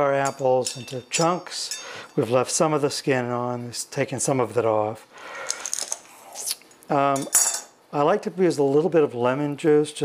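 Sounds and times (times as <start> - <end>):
man talking: 0.0 - 5.1, 6.9 - 10.0.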